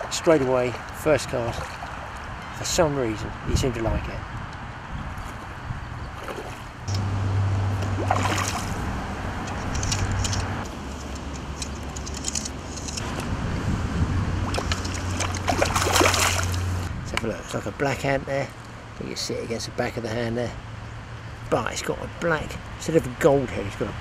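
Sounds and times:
steady low hum: 6.7 - 11.7
fish splashing in water: 7.8 - 9.0, 14.4 - 16.9.

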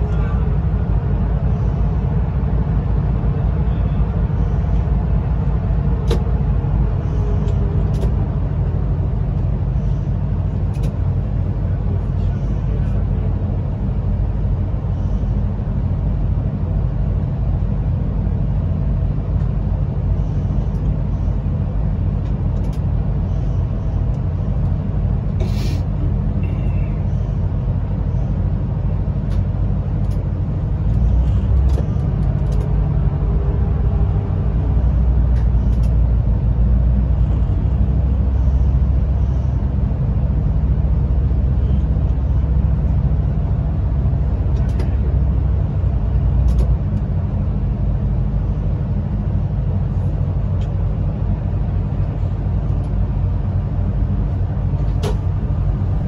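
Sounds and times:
train rumbling through tunnel: 0.0 - 56.0.

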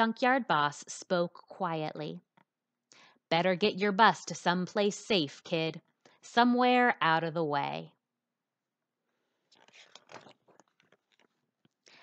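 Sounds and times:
book page turning: 9.2 - 11.8.

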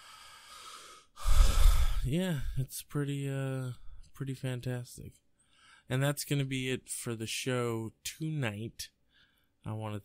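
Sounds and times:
heavy exhale on microphone: 0.0 - 2.1
man inhaling: 0.0 - 2.6, 5.4 - 5.9, 9.1 - 9.6.

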